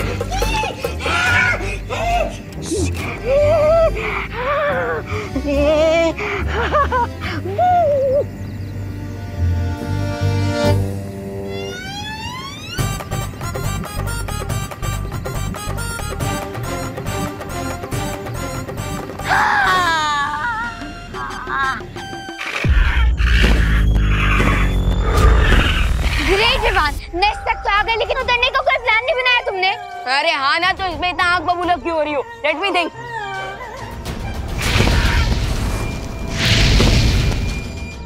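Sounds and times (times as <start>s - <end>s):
background music: 0.0s - 38.0s
high wavering cries: 11.4s - 13.0s.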